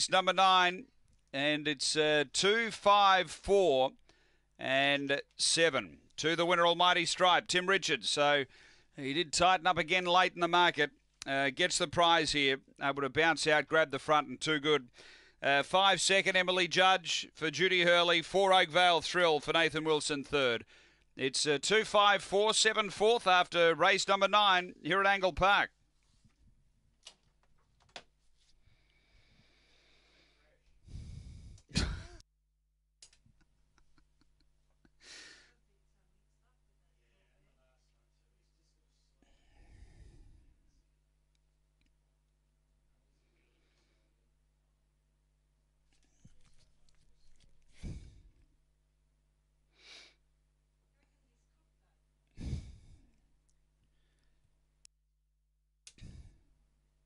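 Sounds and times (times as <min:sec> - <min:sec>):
heavy breath into microphone: 0:08.5 - 0:09.0, 0:14.9 - 0:15.4, 0:28.6 - 0:31.7, 0:39.2 - 0:40.6, 0:47.7 - 0:48.4, 0:52.4 - 0:53.2, 0:56.0 - 0:56.5
microphone background hum: 0:30.8 - 0:32.2
person sighing: 0:52.4 - 0:53.1.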